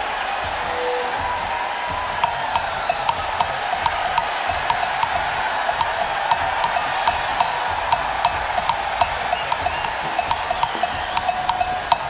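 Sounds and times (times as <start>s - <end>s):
drum kit strikes: 0.0s - 12.0s.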